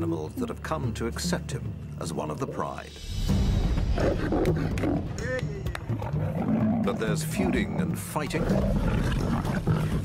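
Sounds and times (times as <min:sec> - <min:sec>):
dramatic music with low drone: 0:00.0 - 0:10.0
lions snarling and roaring: 0:03.8 - 0:05.1, 0:05.8 - 0:10.0.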